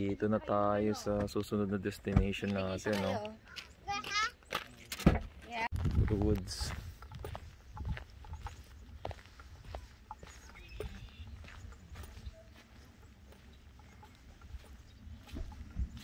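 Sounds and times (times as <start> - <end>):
footsteps on gravel: 2.4 - 16.0
wind rumble on microphone: 5.7 - 12.2, 14.4 - 16.0.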